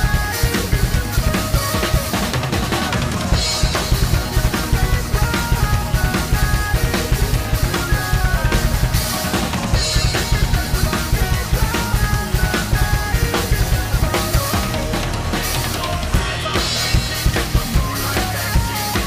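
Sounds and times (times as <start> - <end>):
bass drum beat: 0.0 - 19.0
heavy metal backing track: 0.0 - 19.0.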